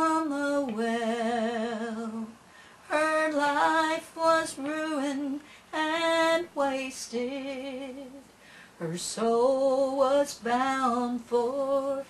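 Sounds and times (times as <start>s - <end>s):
woman singing gospel unaccompanied: 0.0s - 12.0s.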